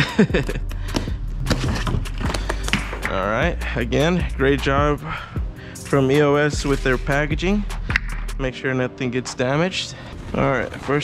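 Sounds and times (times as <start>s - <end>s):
background music: 0.0s - 11.0s
scraping: 1.0s - 3.2s
cardboard box being opened: 1.4s - 2.9s.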